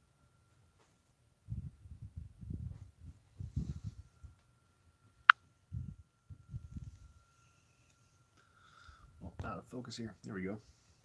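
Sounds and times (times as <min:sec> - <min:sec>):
faint high whine: 0:00.0 - 0:11.0.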